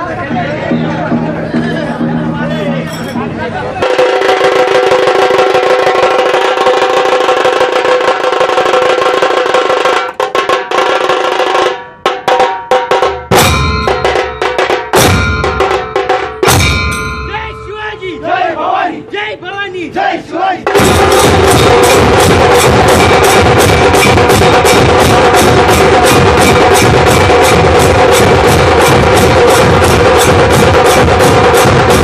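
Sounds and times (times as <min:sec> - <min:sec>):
drums playing fast roll: 0:00.0 - 0:17.6, 0:20.6 - 0:32.0
heavy drum strokes: 0:00.0 - 0:18.5, 0:20.6 - 0:32.0
ringing hand cymbals: 0:00.3 - 0:06.2, 0:13.4 - 0:18.3, 0:20.8 - 0:32.0.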